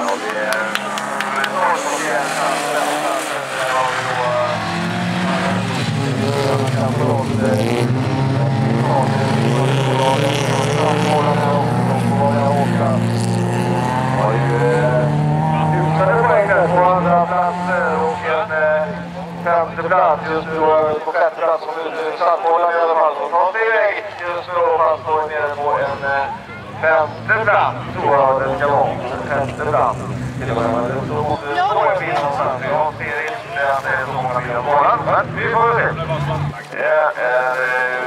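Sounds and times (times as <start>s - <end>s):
race car engines revving: 0.0s - 38.0s.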